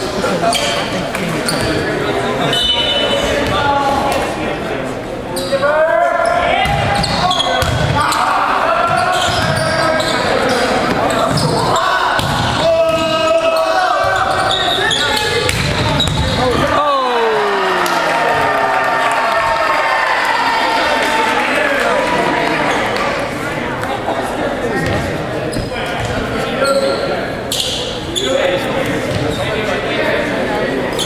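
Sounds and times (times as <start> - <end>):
sneakers squeaking on court: 0.5 - 1.9, 6.2 - 8.0, 8.9 - 12.4, 14.0 - 16.5, 24.8 - 28.3
people shouting: 16.4 - 22.7.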